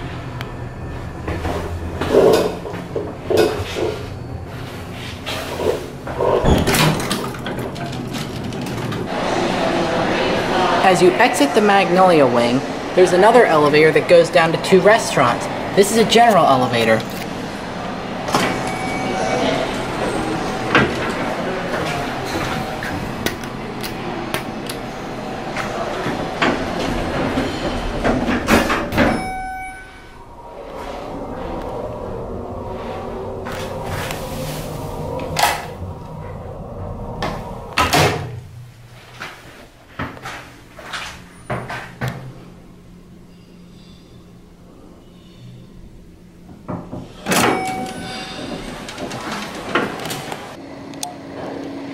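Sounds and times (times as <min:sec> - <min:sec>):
elevator low hum: 0:00.0 - 0:51.9
elevator doors knocking: 0:06.1 - 0:09.2, 0:46.4 - 0:50.6
murmur of voices: 0:09.1 - 0:17.1.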